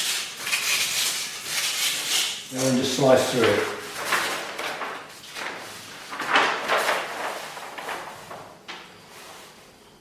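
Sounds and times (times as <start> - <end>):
heavy paper rustling and sliding: 1.0 - 9.9.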